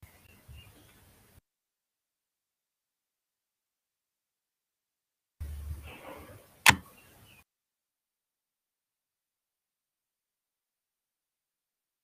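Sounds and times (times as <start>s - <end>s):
sharp click: 6.6s - 6.9s.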